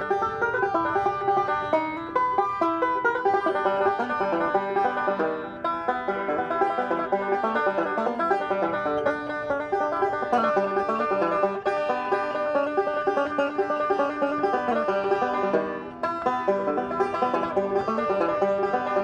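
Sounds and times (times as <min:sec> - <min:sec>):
banjo playing fast plucked notes: 0:00.0 - 0:19.0.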